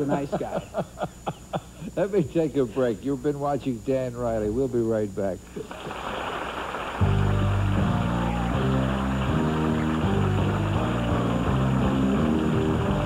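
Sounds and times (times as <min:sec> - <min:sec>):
audience applause: 0:05.7 - 0:13.0
loud instrumental band music: 0:07.0 - 0:13.0.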